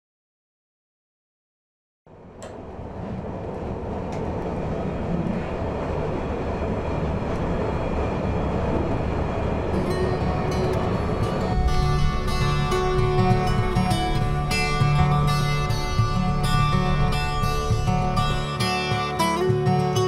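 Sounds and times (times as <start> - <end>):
train rail rumble: 2.1 - 20.0
guitar music: 9.8 - 20.0.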